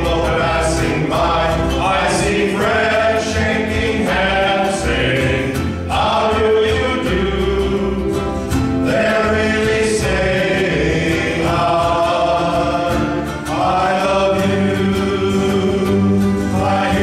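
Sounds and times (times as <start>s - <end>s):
men's choir singing: 0.0s - 17.0s.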